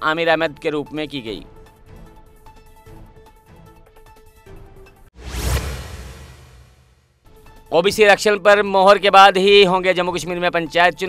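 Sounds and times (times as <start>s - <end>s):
low rumble: 5.2s - 7.0s
whoosh sound effect: 5.2s - 7.1s.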